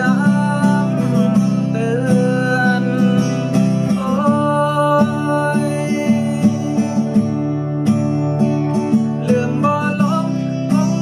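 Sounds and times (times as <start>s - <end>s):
man singing: 0.0s - 7.2s, 9.0s - 11.0s
acoustic guitar strumming: 0.0s - 11.0s.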